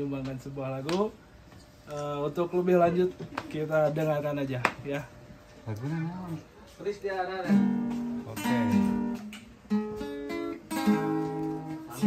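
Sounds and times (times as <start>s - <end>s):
acoustic guitar chords: 7.4s - 12.0s.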